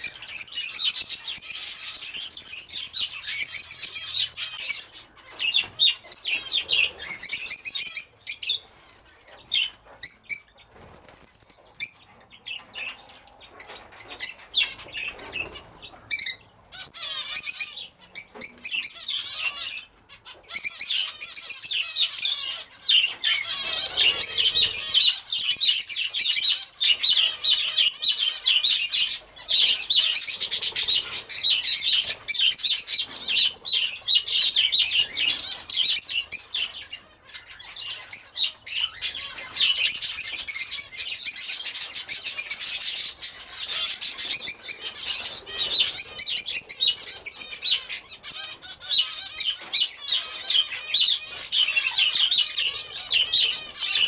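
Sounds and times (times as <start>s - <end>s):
small birds chattering and chirping: 0.0s - 54.0s.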